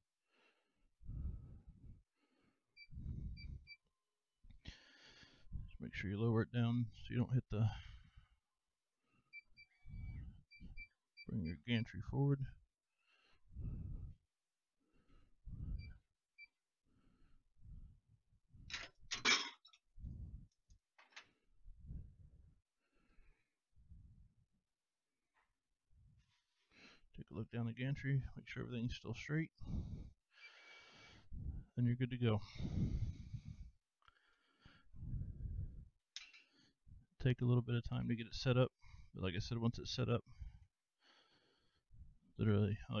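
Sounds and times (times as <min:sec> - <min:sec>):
heavy breaths: 0:00.2 - 0:03.8, 0:04.5 - 0:05.8, 0:07.6 - 0:10.9, 0:12.9 - 0:16.1, 0:16.9 - 0:18.8, 0:20.0 - 0:20.6, 0:29.5 - 0:37.2, 0:40.2 - 0:42.3.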